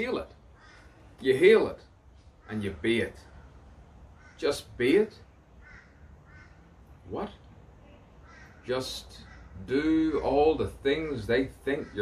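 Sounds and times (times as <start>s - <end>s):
faint short bird calls: 0.5s - 1.2s, 2.2s - 7.0s, 7.7s - 9.7s.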